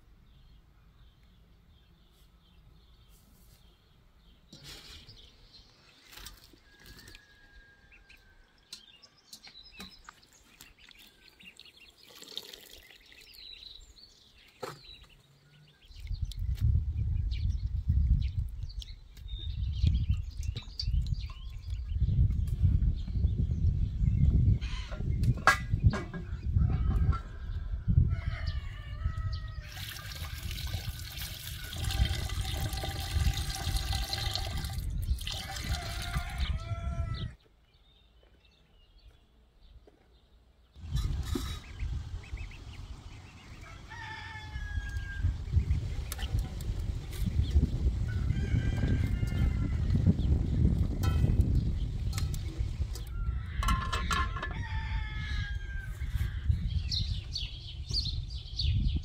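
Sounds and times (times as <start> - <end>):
rooster crowing: 6.7 - 8.5, 35.4 - 37.4, 43.6 - 45.4, 48.1 - 50.0, 53.1 - 56.3
water pouring into metal pot: 11.9 - 13.4, 29.7 - 36.5.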